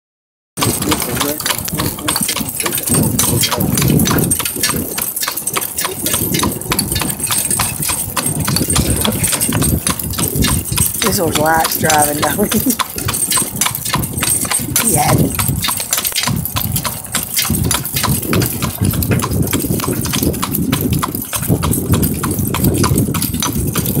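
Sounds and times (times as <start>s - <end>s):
horse hoofbeats: 0.6s - 24.0s
metal cart rattling: 0.6s - 24.0s
wheels rumbling: 0.6s - 24.0s.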